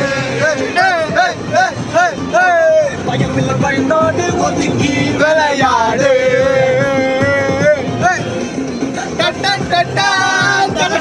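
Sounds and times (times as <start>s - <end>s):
men singing and shouting: 0.0s - 11.0s
song playing: 0.0s - 11.0s.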